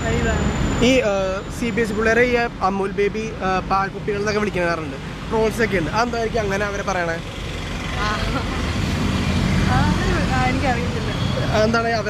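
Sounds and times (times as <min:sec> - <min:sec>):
people talking: 0:00.0 - 0:07.2, 0:08.0 - 0:08.6, 0:09.7 - 0:12.0
road traffic rumbling: 0:00.0 - 0:12.0.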